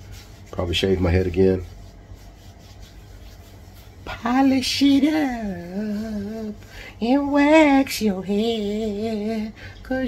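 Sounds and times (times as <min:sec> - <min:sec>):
palm rubbing bald scalp: 0:00.0 - 0:06.6.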